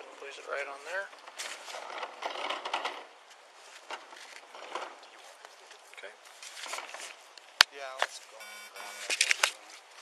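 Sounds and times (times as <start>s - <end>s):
paper rustling on clipboard: 5.2s - 7.2s.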